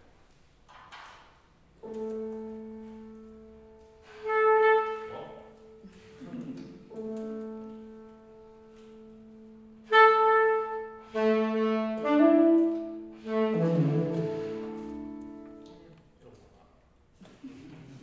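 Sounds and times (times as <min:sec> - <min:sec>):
piano chords: 0:01.6 - 0:16.0
tenor saxophone: 0:01.9 - 0:15.9.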